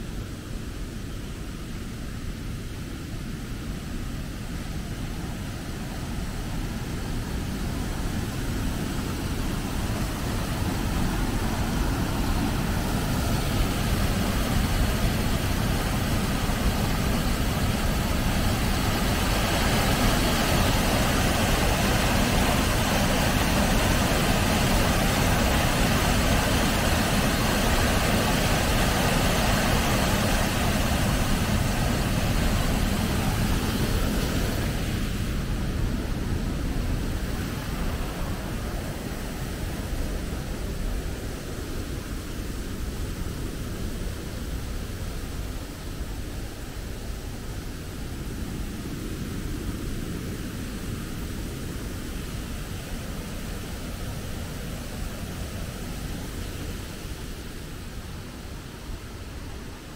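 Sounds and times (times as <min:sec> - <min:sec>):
water rushing over a weir: 0:00.0 - 0:59.9.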